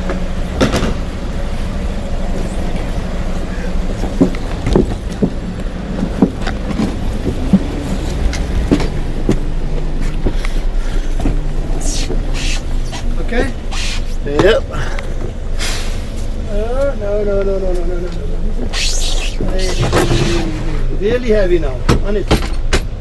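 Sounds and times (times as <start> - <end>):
low vehicle hum: 0.0 - 23.0.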